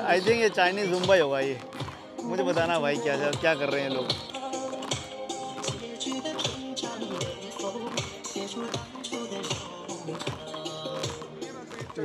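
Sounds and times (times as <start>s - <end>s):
upbeat dance music: 0.0s - 12.0s.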